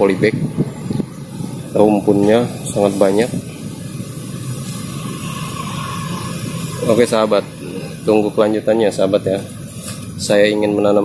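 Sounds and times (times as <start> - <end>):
steady hissing: 0.0 - 10.8
man speaking: 1.7 - 3.5, 6.8 - 9.5.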